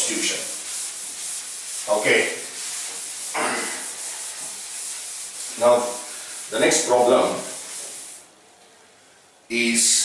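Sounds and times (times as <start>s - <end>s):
cloth rubbing on chalkboard: 0.0s - 8.3s.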